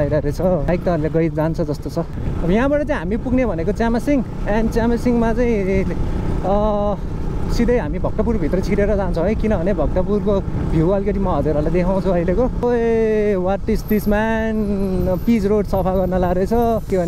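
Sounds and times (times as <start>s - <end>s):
motorcycle engine rumble: 0.0s - 17.0s.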